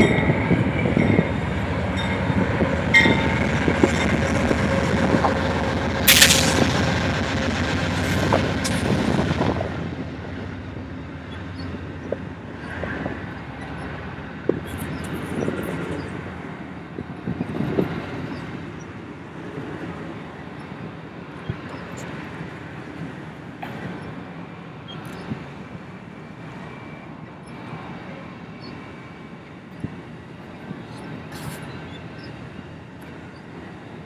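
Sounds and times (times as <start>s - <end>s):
sharp rail clicks: 0.0s - 10.7s
train wheels rumbling on rail: 0.0s - 34.0s.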